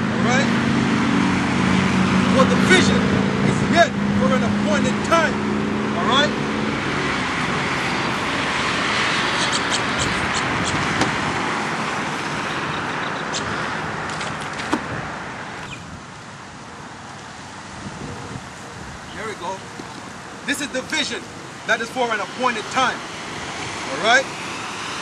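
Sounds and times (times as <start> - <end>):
passing vehicle rush: 0.0 - 25.0.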